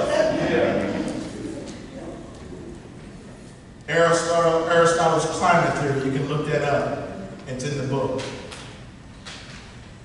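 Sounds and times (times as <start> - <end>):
faint hummed voice: 0.0 - 9.4.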